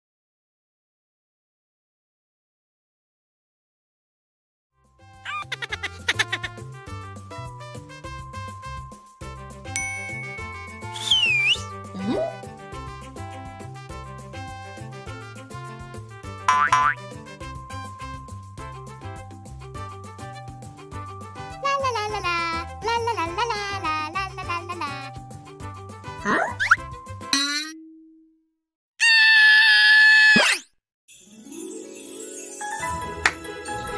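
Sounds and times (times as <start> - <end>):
playful cartoon music: 4.8 - 27.8, 30.4 - 33.9
bell-like ding: 9.8 - 11.4
swooping cartoon whistle: 10.8 - 11.7
cartoon character high-pitched scream: 29.0 - 30.7.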